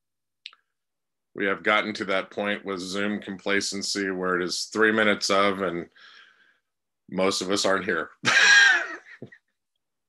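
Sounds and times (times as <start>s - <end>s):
person laughing: 8.2s - 9.5s.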